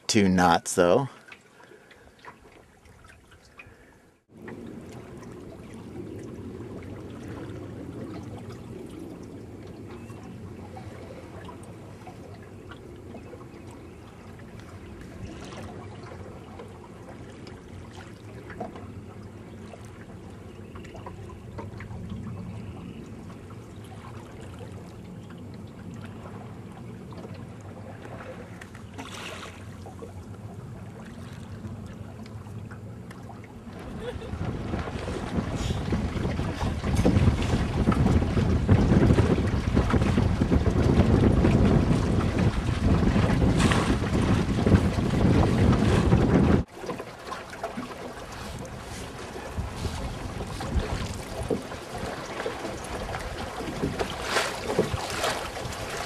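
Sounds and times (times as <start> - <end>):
water lapping along boat hull: 0.0 - 56.0
small splashes: 27.0 - 32.3, 33.0 - 56.0.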